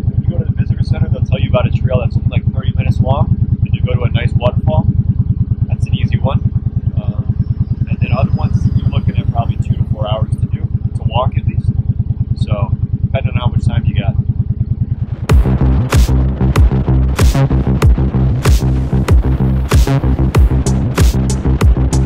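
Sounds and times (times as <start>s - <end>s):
people talking: 0.0s - 4.9s, 5.7s - 6.4s, 7.0s - 7.3s, 7.9s - 11.7s, 12.4s - 14.2s
motorcycle engine idling: 0.0s - 22.0s.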